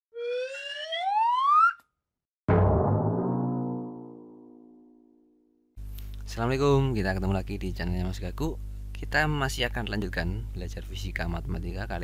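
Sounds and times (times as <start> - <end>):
rising whistle-like tone: 0.2 - 1.8.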